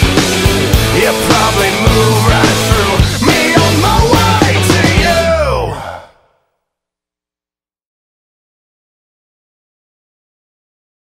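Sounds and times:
held rock chord: 0.0s - 5.8s.

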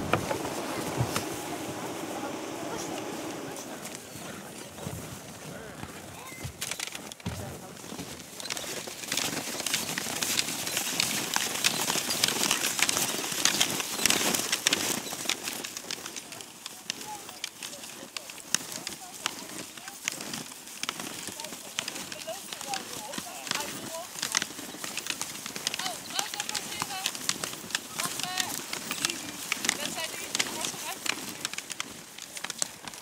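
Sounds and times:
indistinct group chatter: 0.0s - 5.8s
steps crunching in snow: 0.0s - 33.0s.

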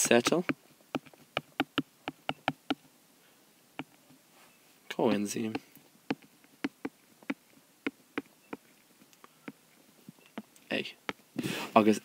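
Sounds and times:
stylus tapping on glass screen: 0.2s - 2.8s, 5.5s - 8.7s.

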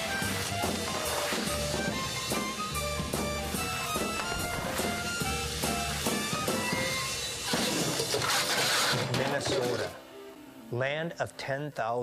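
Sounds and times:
short music phrase: 3.8s - 6.7s.

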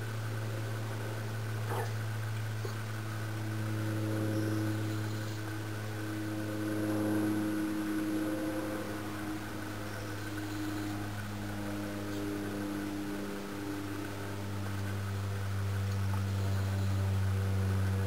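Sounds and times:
machine humming: 0.0s - 18.0s.

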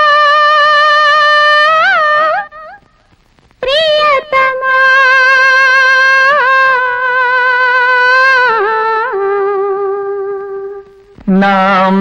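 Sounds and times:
woman singing wordless melody: 0.0s - 2.8s, 3.6s - 12.0s.

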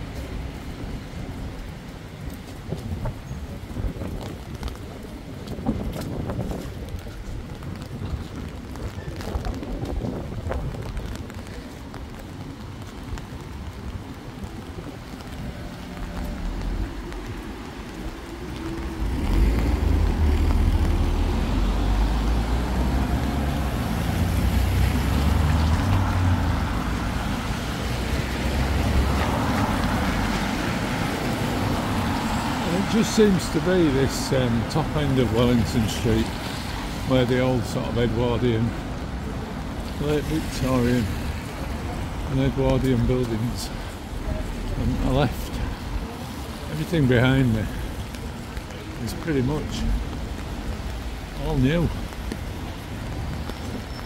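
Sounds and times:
wind buffeting microphone: 0.0s - 32.8s
cars passing on wet street: 0.0s - 54.0s
raindrops ticking on umbrella: 0.0s - 54.0s
steady rain: 0.0s - 54.0s.

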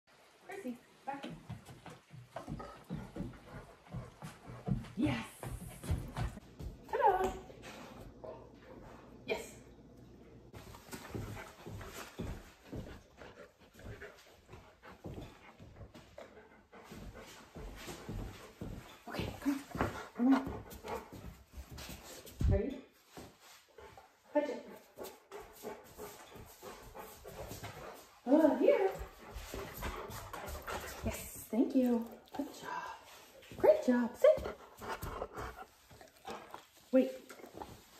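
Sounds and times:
dog footfalls on tile: 1.3s - 8.1s
large dog panting: 1.5s - 6.8s, 10.6s - 22.4s, 23.4s - 37.9s.

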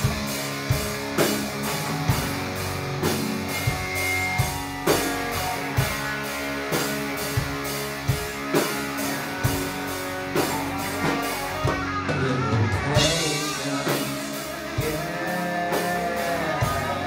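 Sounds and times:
drum kit beat: 0.0s - 17.0s
electric guitar chords: 0.0s - 17.0s.

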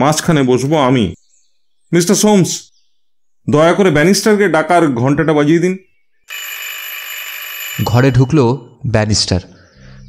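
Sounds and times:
call bell ringing: 6.3s - 8.8s.

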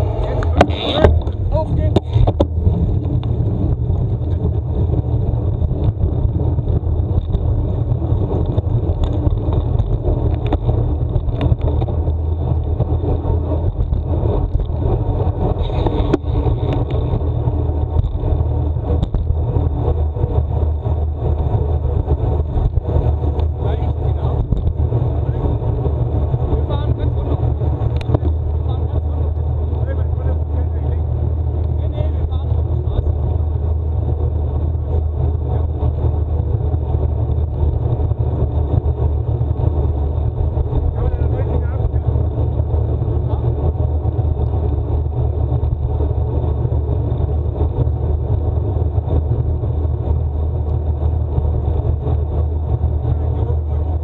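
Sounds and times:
tyres rumbling on asphalt: 0.0s - 54.0s
wind over microphone: 0.0s - 54.0s.

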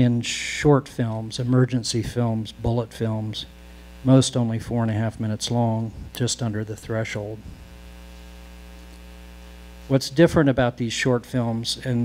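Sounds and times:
man speaking: 0.0s - 7.5s, 9.9s - 12.0s
electrical mains hum: 0.0s - 12.0s.

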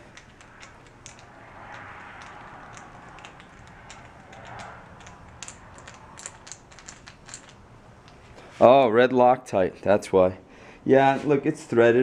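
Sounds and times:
small metallic clicks: 0.0s - 8.4s.

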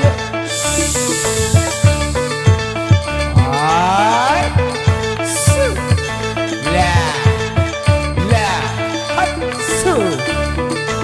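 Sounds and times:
dangdut music: 0.0s - 11.0s.

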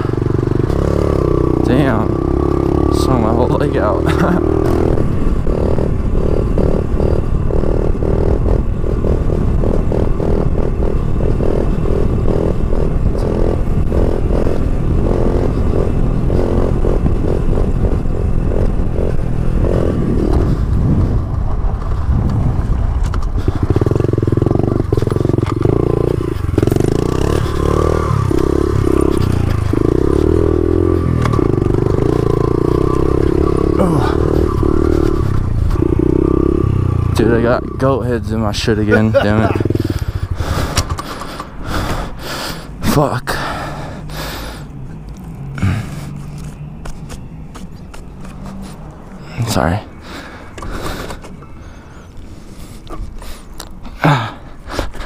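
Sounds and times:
small motorbike engine running: 0.0s - 55.0s.

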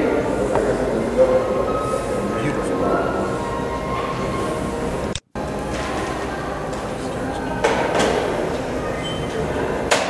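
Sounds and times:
background voices din: 5.5s - 10.0s.

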